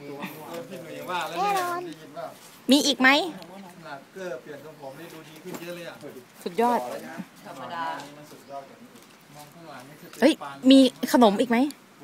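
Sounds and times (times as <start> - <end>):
voices talking: 0.0 - 11.8.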